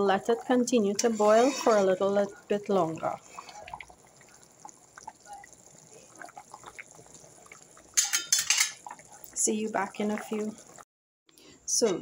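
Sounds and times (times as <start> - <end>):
thick stew bubbling in a pot: 0.0 - 10.9.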